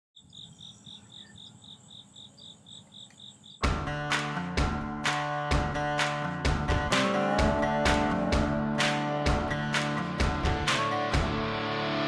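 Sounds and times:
high insect trill: 0:00.2 - 0:03.7
insects chirping: 0:00.2 - 0:03.7
loud guitar music: 0:03.6 - 0:12.0.

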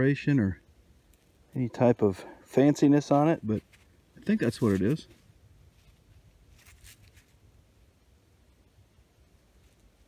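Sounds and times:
faint rustle: 0:00.9 - 0:07.9, 0:09.2 - 0:10.0.

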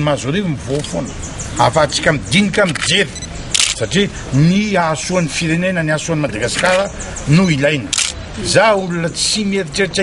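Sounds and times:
man speaking: 0:00.0 - 0:10.0
camera shutter clicks: 0:02.7 - 0:03.8, 0:07.9 - 0:08.2.

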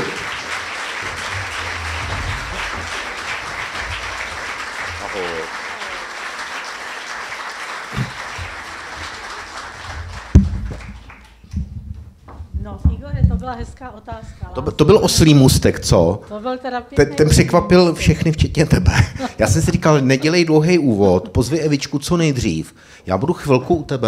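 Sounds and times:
audience applauding: 0:00.0 - 0:11.5.

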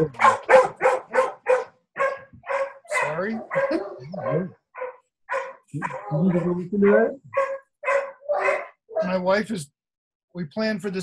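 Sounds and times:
dog barking sharply: 0:00.1 - 0:09.2.

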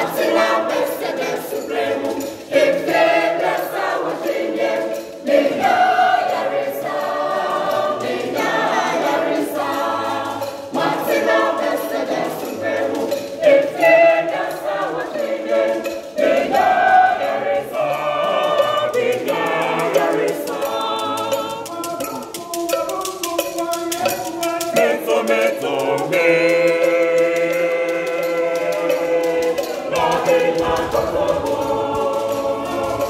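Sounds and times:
children's choir singing a hymn: 0:00.0 - 0:33.0.

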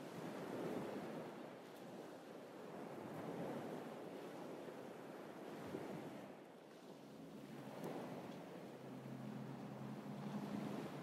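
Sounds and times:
small waves washing onto beach: 0:00.0 - 0:11.0.

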